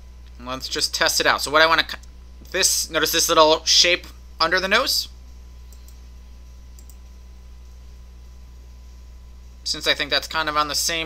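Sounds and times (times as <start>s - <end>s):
steady low hum: 0.0s - 11.0s
computer mouse clicks: 5.7s - 6.0s, 6.7s - 7.1s.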